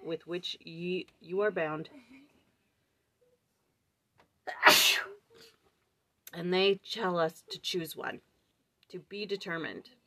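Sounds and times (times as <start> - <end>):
woman sneezing: 4.5 - 5.3.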